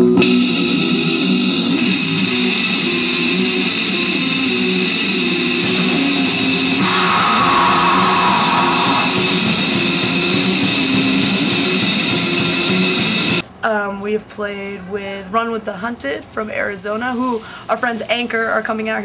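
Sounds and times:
distorted guitar riffing: 0.0 - 13.4
drums: 0.0 - 13.4
steady high whine: 0.0 - 13.4.

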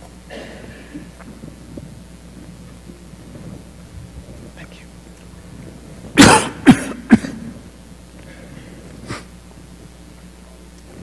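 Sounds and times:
person coughing in a church: 0.3 - 1.2, 6.2 - 9.3.

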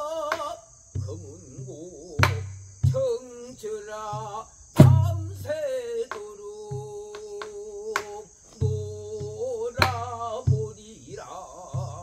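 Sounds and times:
traditional singing with vibrato: 0.0 - 12.0
barrel drum strikes: 2.2 - 3.1, 4.2 - 5.5, 6.1 - 10.7.

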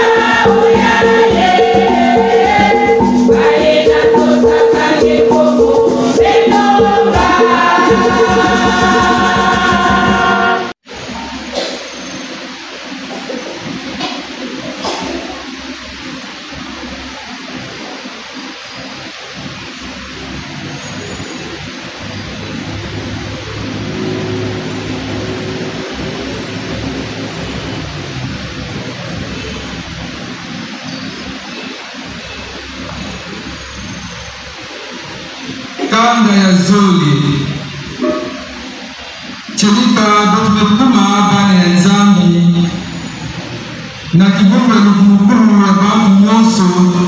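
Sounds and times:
steady rushing background noise: 0.0 - 47.0.

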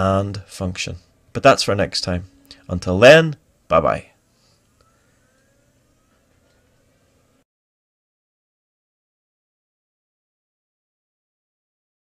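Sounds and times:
faint recording hiss: 0.0 - 7.4.

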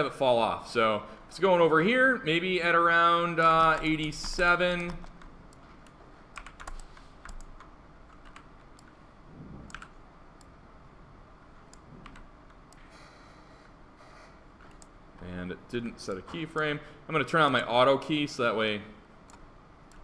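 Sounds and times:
keyboard and mouse clicks: 3.4 - 9.0, 9.6 - 10.6, 11.7 - 12.9, 14.6 - 15.3, 19.3 - 20.0.

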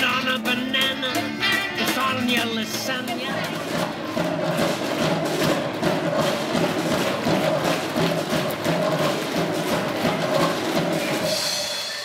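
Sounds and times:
busy drum and percussion hits: 0.0 - 12.0
live band instrumental: 0.0 - 12.0.

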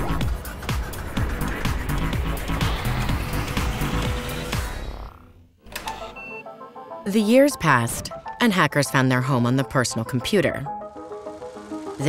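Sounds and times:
music: 0.0 - 12.0
stepping electronic tones: 1.3 - 12.0.

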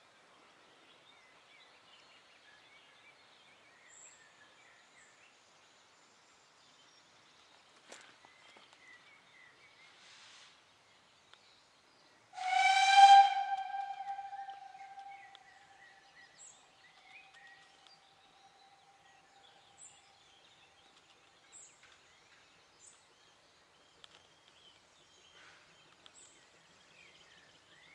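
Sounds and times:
steam locomotive whistle: 12.4 - 15.4
faint bird chirps: 12.4 - 15.6.

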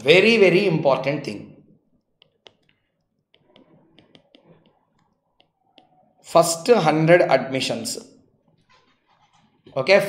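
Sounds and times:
stylus tapping on pen tablet: 1.9 - 6.0.

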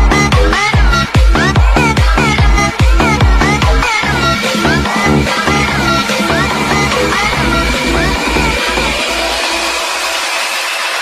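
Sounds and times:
deep bass: 0.0 - 10.4.

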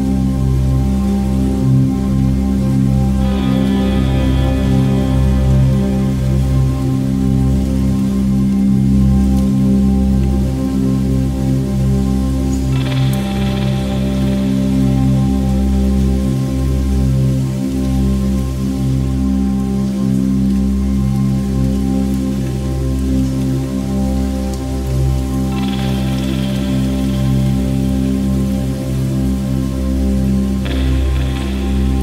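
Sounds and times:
ambient droning music: 0.0 - 32.0
rain-like hiss: 0.0 - 32.0.

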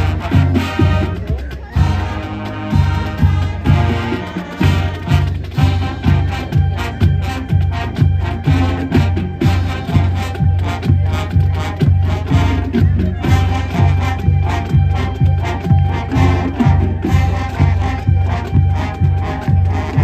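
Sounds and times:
marching band playing: 0.0 - 20.0.

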